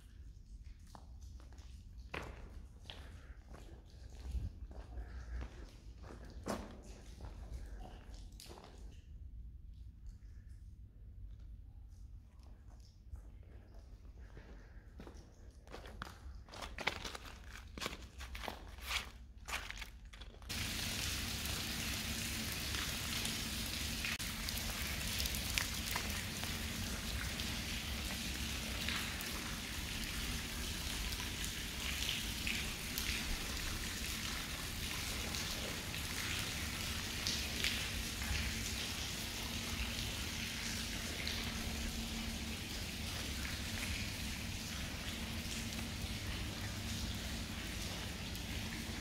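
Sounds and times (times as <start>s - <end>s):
water dripping and splashing: 0.0s - 49.0s
steady watery hiss: 20.5s - 49.0s.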